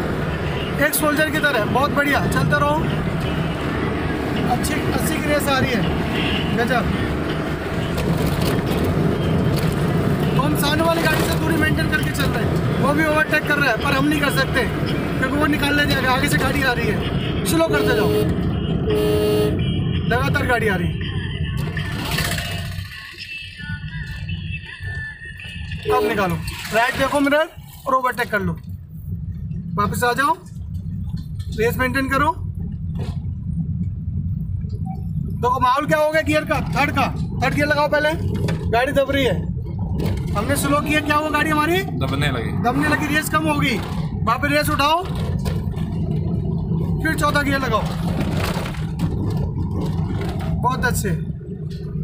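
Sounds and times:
car engine and road rumble: 0.0 - 52.0.

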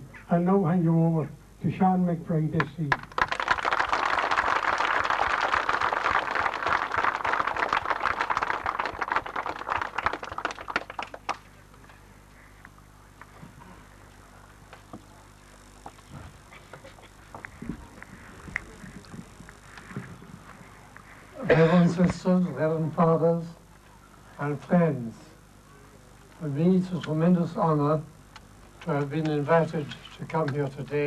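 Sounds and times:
crowd applauding: 2.9 - 11.6
microphone being handled: 15.8 - 21.1.

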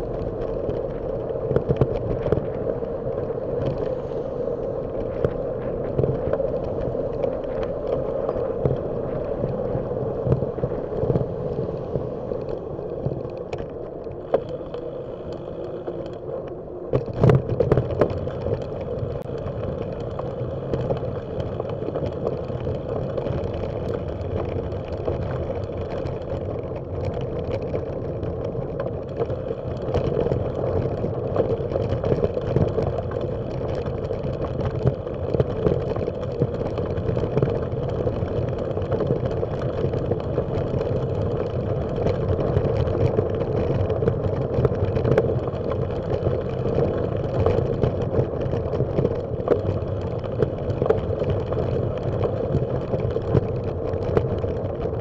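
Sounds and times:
bicycle rumbling: 0.0 - 55.0
tyres on gravel path: 0.0 - 55.0.

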